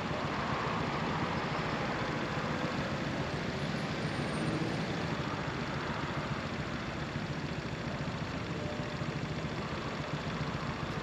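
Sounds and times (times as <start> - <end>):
motor scooter engine idling: 5.0 - 11.0.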